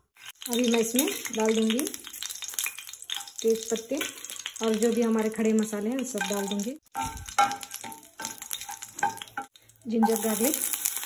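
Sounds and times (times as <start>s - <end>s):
light sizzle of frying: 0.0s - 11.0s
spatula scraping spices in pan: 6.1s - 11.0s.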